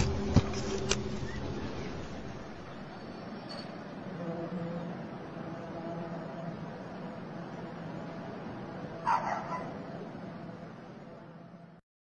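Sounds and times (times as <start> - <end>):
low drone and hiss: 0.0 - 11.8
dog yipping: 9.0 - 9.8.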